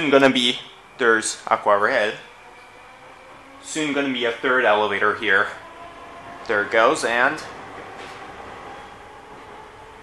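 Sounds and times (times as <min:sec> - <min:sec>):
elevator whir with high tone: 0:00.0 - 0:10.0
elevator doors sliding shut: 0:02.0 - 0:10.0.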